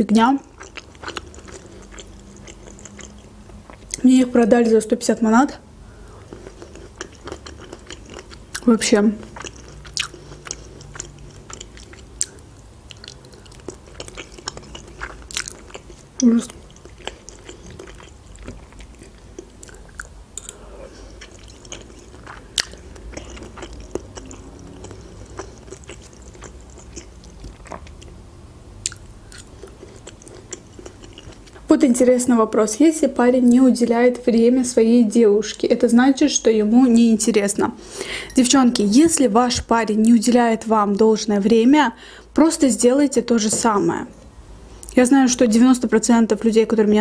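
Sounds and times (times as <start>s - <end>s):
wet chewing sounds: 0.4s - 4.0s, 6.0s - 28.2s, 28.8s - 31.7s.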